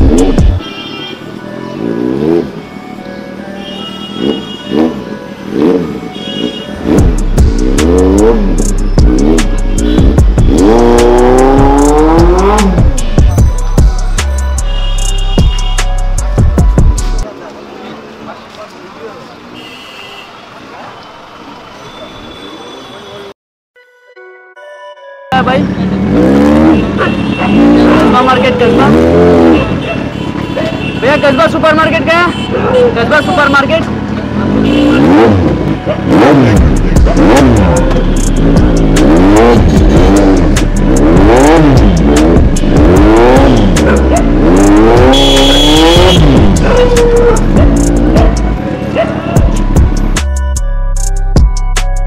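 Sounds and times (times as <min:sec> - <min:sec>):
motorcycle engine revving: 0:00.0 - 0:00.6, 0:01.8 - 0:02.7, 0:04.2 - 0:13.4, 0:25.6 - 0:31.0, 0:33.8 - 0:50.2
background music: 0:00.0 - 0:17.3, 0:23.8 - 0:29.9, 0:35.0 - 0:52.0.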